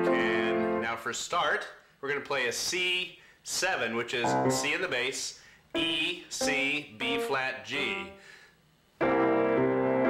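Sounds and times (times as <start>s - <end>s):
piano chord ringing: 4.2s - 4.9s.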